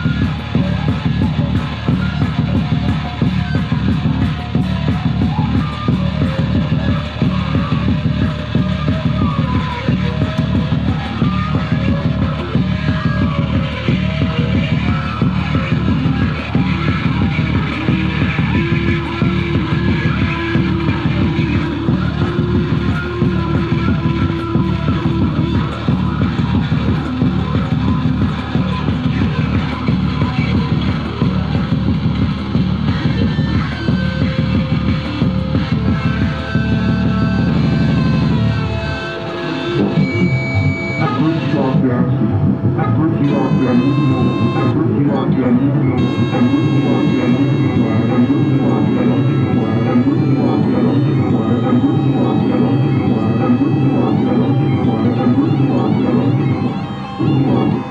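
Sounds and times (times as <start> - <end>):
pulsing low electronic drone: 0.0 - 57.9.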